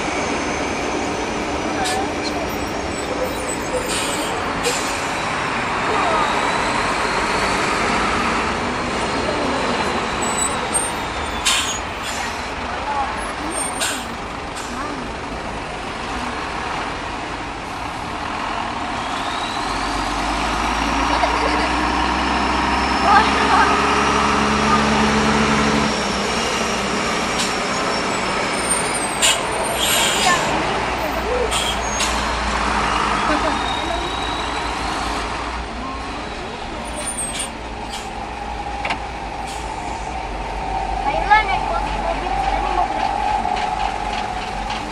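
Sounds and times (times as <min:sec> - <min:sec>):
heavy vehicle engines running low: 0:00.0 - 0:44.9.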